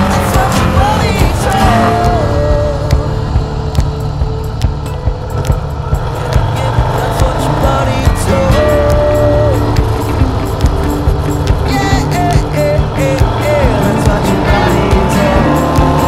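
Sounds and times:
rock music: 0:00.0 - 0:16.0
sliding guitar melody: 0:00.0 - 0:16.0
steady drum beat: 0:00.0 - 0:16.0.

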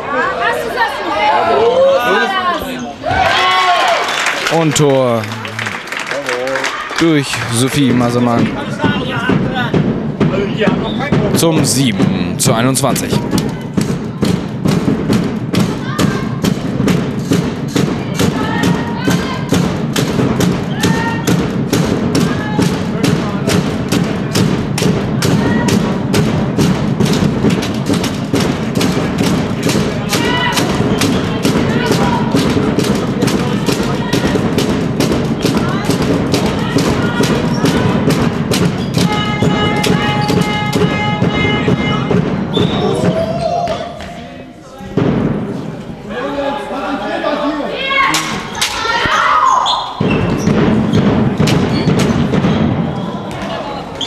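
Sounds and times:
spectators keeping a fast beat: 0:00.0 - 0:44.2, 0:47.7 - 0:54.0
crowd shouting and cheering: 0:00.0 - 0:54.0.

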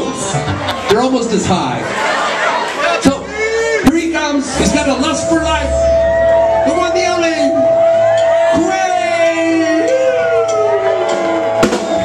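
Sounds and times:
steady held tone: 0:04.4 - 0:10.5
electric guitar notes sliding down: 0:04.5 - 0:12.0.

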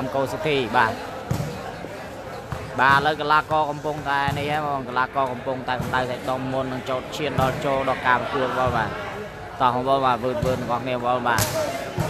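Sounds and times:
court sound: 0:00.0 - 0:12.0.

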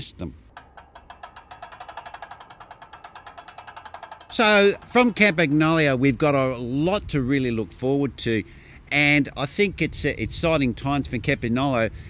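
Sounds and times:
bicycle freehub ratchet clicking: 0:00.6 - 0:06.6.

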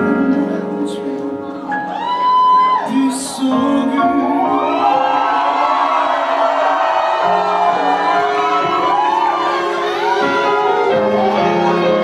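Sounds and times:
keyboard and string chords: 0:00.0 - 0:12.0.

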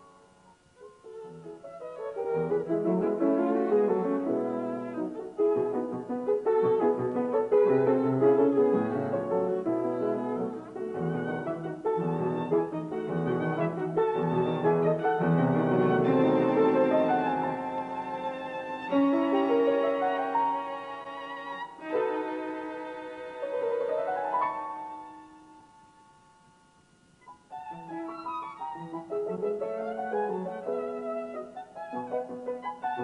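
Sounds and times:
classical chamber music trio: 0:00.0 - 0:26.3, 0:27.2 - 0:33.0.

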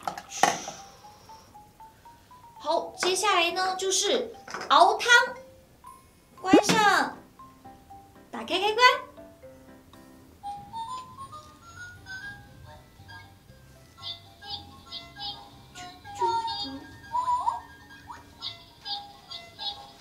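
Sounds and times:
toy electronic children's tune: 0:00.3 - 0:08.1, 0:10.4 - 0:20.0.

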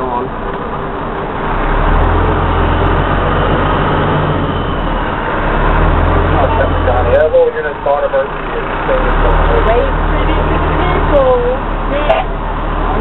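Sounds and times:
truck engine rumbling: 0:00.0 - 0:13.0.

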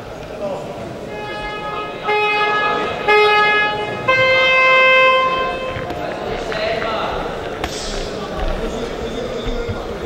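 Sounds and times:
electronic horn tones: 0:01.1 - 0:06.0.

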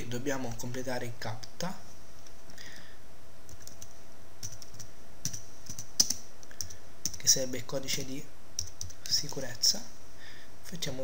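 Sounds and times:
steady background hiss: 0:00.0 - 0:11.0
computer keyboard keystrokes: 0:03.5 - 0:07.2, 0:08.6 - 0:09.4.

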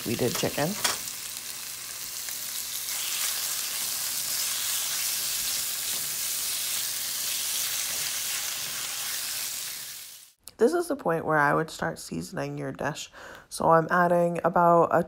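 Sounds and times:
chicken and onions sizzling in pan: 0:00.0 - 0:10.4.

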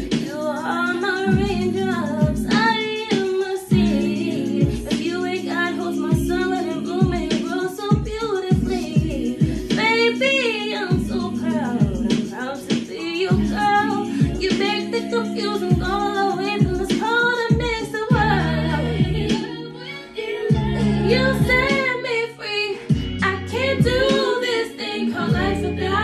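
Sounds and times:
backing track with bass and chords: 0:00.0 - 0:26.0
woman singing ballad: 0:00.0 - 0:26.0.

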